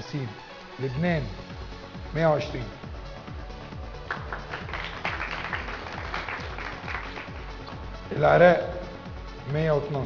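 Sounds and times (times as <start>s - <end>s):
background music: 0.0s - 10.0s
people clapping: 4.0s - 7.9s.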